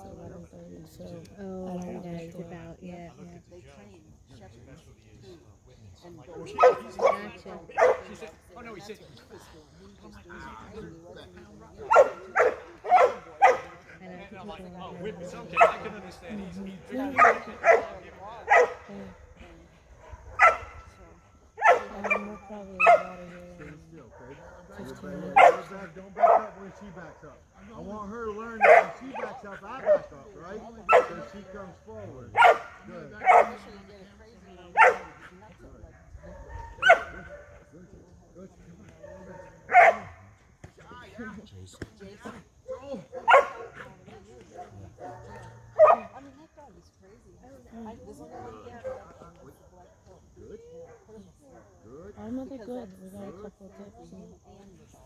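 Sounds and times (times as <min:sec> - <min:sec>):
dog barking: 0:06.4 - 0:08.2, 0:11.8 - 0:13.8, 0:15.5 - 0:15.9, 0:17.0 - 0:18.9, 0:20.0 - 0:20.9, 0:21.6 - 0:23.2, 0:24.1 - 0:26.6, 0:28.6 - 0:30.1, 0:30.9 - 0:31.4, 0:32.4 - 0:33.7, 0:34.8 - 0:35.3, 0:36.2 - 0:37.6, 0:39.0 - 0:40.2, 0:42.7 - 0:43.9, 0:44.6 - 0:46.2.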